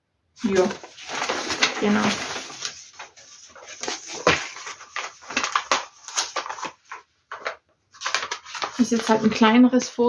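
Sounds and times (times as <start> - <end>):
paper pages rustling: 0.4 - 10.0.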